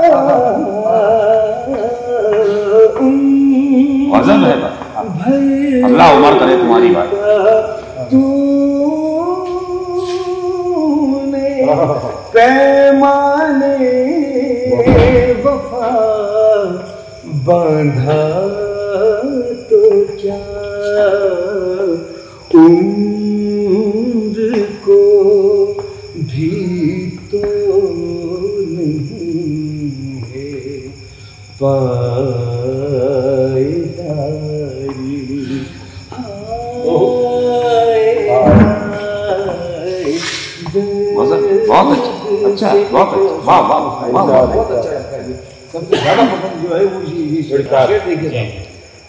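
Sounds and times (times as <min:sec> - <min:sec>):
man singing a long note: 0:00.0 - 0:31.0, 0:31.6 - 0:43.6.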